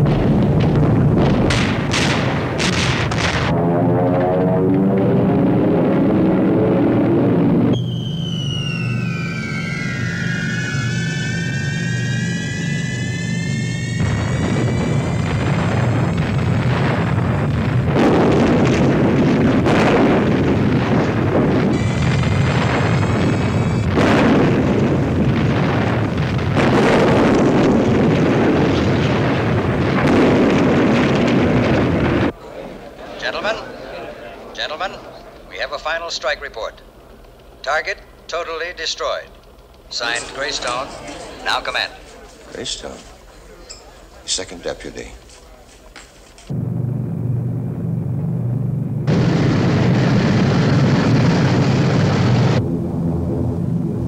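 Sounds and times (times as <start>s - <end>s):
heavy bomb explosions: 0.0s - 36.5s, 46.5s - 54.0s
aircraft engines droning: 3.5s - 17.4s, 32.3s - 54.0s
falling bomb whistles: 7.2s - 16.2s, 21.7s - 24.8s.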